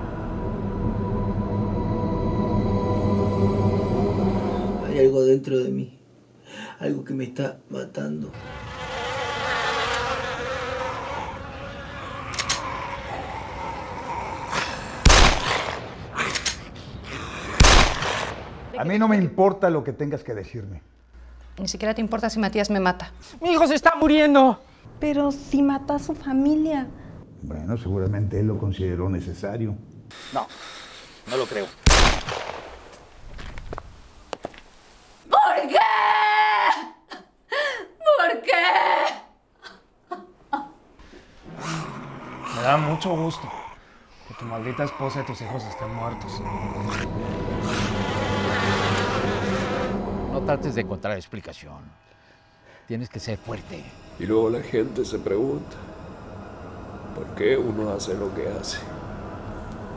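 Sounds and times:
woman screaming: 35.3s - 37.1s, 38.0s - 39.3s.

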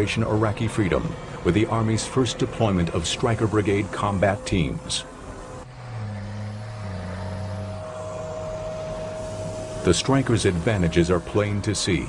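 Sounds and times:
armored vehicle diesel engine: 0.0s - 12.0s
steady high whine: 0.0s - 12.0s.

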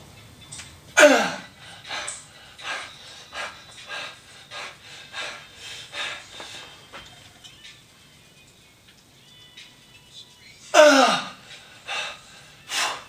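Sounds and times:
man grunting: 1.0s - 1.5s, 10.8s - 11.4s
man panting hard: 1.0s - 6.9s, 10.8s - 13.0s.

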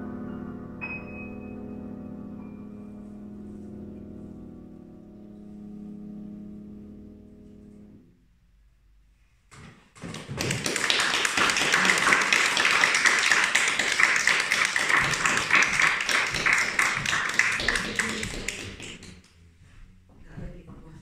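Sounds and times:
audience applauding: 10.0s - 19.3s.

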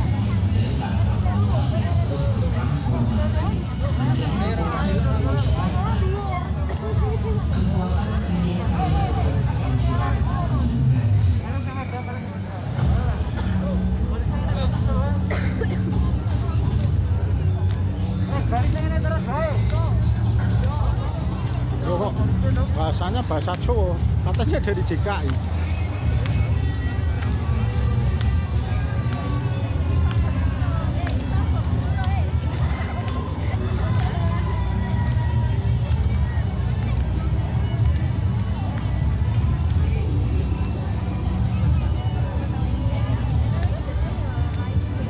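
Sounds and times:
crowd voices: 0.0s - 45.0s.

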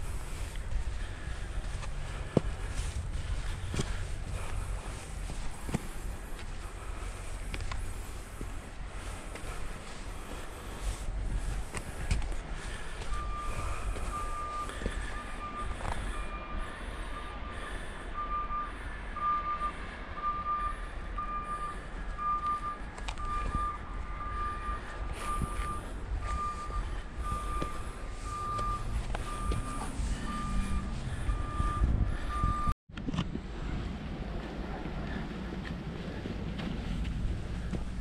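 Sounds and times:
steady low rumble: 0.0s - 38.0s
electronic beeping: 18.2s - 32.8s.

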